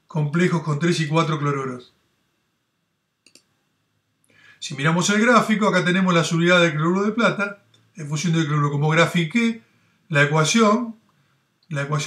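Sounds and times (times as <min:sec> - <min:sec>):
computer mouse click: 0:03.2 - 0:03.6.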